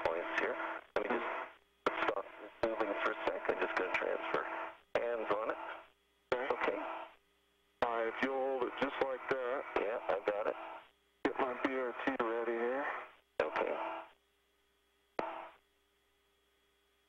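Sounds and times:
radio voice transmissions: 0.0 - 7.1, 7.8 - 14.1
faint steady tone: 0.0 - 17.0.

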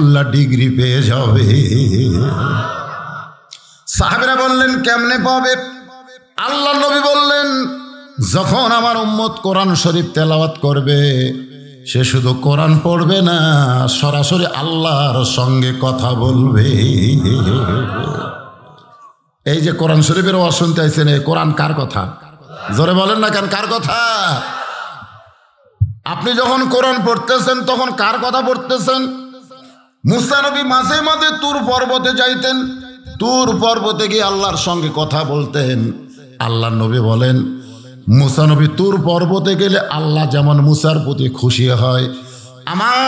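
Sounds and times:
man speaking: 0.0 - 2.7, 3.8 - 24.6, 25.8 - 43.0.

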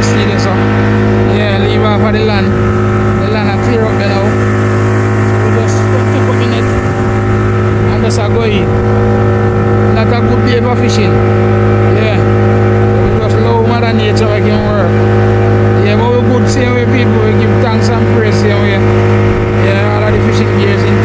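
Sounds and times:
outboard motor running: 0.0 - 21.0.

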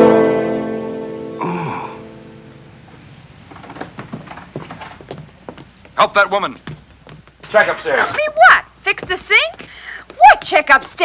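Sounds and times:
orchestral strings: 0.0 - 2.9.

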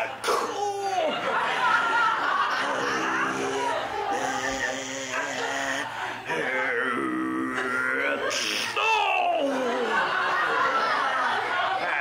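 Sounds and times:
man groaning and crying out: 0.2 - 1.1, 2.8 - 9.8.

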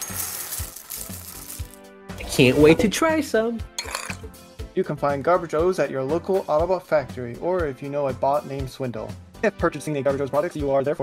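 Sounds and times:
cereal pouring into a bowl: 0.0 - 1.8
light background music: 0.0 - 11.0.

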